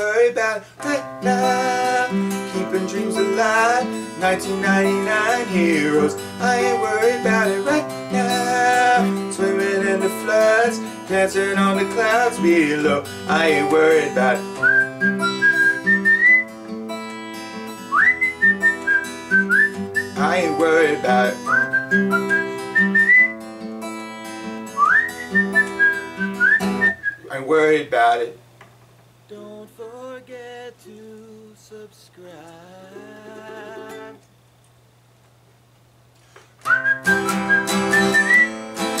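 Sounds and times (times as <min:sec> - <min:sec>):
fingerpicked acoustic guitar: 0:00.0 - 0:28.2, 0:29.3 - 0:34.2, 0:36.6 - 0:39.0
person whistling a melody: 0:13.5 - 0:16.5, 0:17.9 - 0:23.4, 0:24.7 - 0:27.3, 0:36.6 - 0:38.6.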